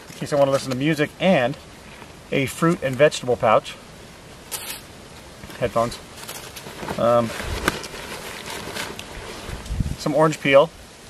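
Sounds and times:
rustling and handling noise: 0:00.0 - 0:03.2, 0:04.4 - 0:10.6
wind buffeting microphone: 0:09.4 - 0:10.1.

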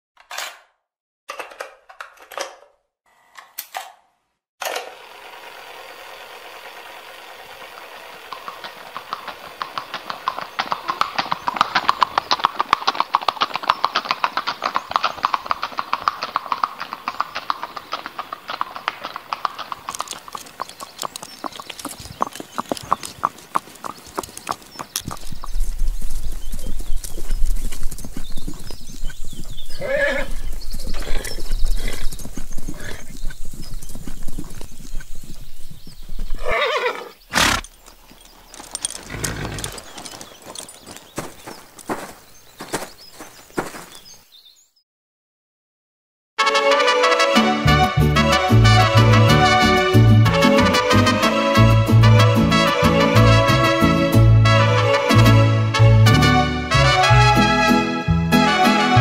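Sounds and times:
horse hooves clopping: 0:07.0 - 0:44.2, 0:48.0 - 0:57.8
horse whinnying: 0:29.7 - 0:32.1, 0:36.4 - 0:37.8, 0:38.7 - 0:40.0.

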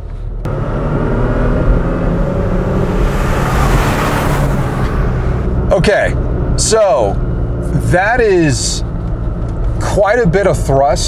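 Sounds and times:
truck engine accelerating hard: 0:00.2 - 0:11.0.

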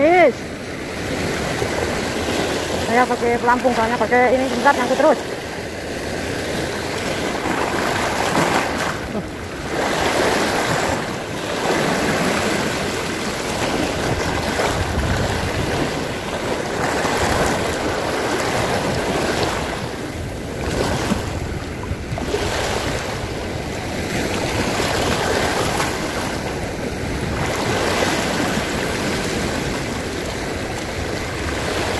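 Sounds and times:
waves washing over rocks: 0:00.0 - 0:31.9.

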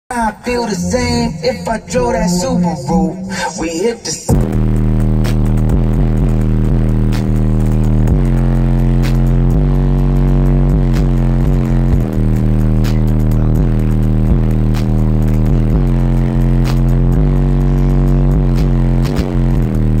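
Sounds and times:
hip hop through car stereo: 0:00.1 - 0:20.0.

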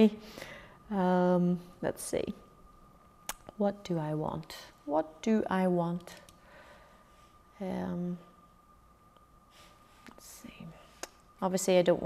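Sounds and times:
faint steady hum: 0:00.0 - 0:12.0
woman whispering: 0:10.1 - 0:11.0.

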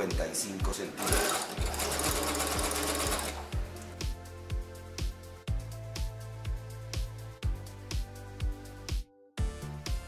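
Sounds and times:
background music with steady beat: 0:00.0 - 0:10.0
sewing machine stitching: 0:01.0 - 0:03.5.

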